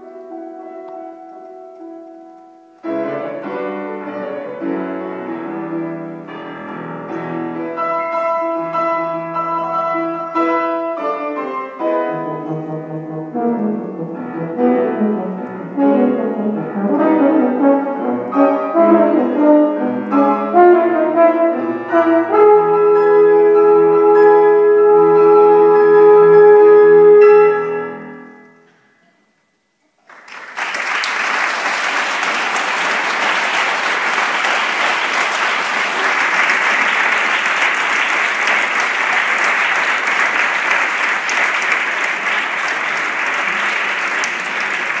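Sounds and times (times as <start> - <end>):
audience applause: 30.0 - 45.0.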